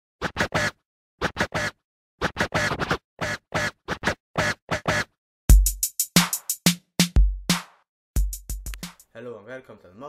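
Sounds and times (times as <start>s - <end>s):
turntable scratches: 0.2s - 5.1s.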